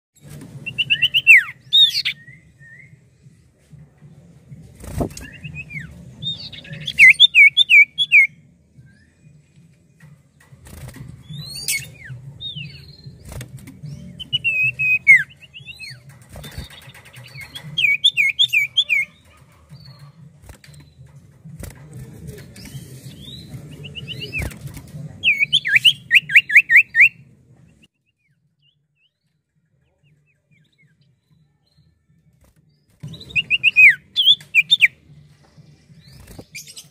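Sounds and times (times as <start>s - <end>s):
bird whistling song: 0.6s - 3.0s, 5.0s - 9.4s, 11.2s - 19.2s, 22.6s - 24.6s, 25.2s - 27.2s, 33.0s - 35.0s.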